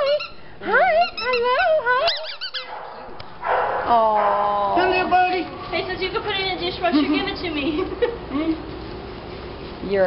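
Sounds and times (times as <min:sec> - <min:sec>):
dog whining yips: 0:00.0 - 0:03.7.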